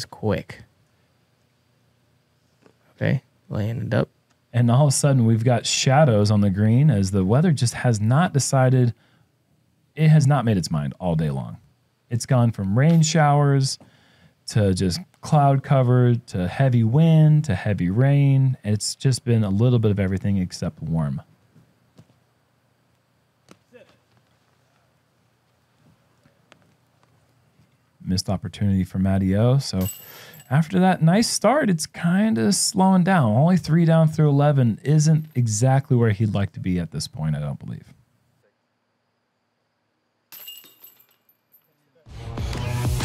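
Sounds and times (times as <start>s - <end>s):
metal chains jingling: 29.8s - 30.6s, 40.3s - 41.8s.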